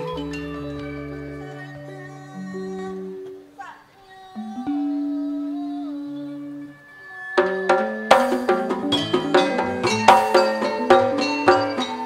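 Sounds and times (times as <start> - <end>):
gamelan music: 0.0 - 3.5, 4.4 - 12.0.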